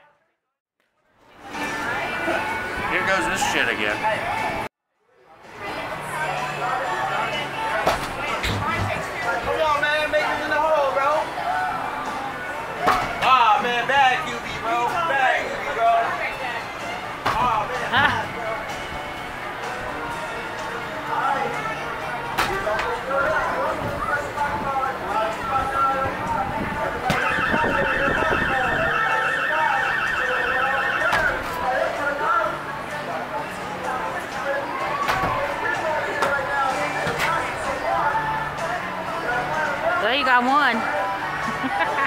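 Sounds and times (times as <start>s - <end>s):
background chatter: 0.9s - 42.0s
background music: 1.2s - 4.7s, 5.5s - 42.0s
voices speaking: 25.3s - 32.2s
warbling electronic alarm: 27.2s - 31.4s.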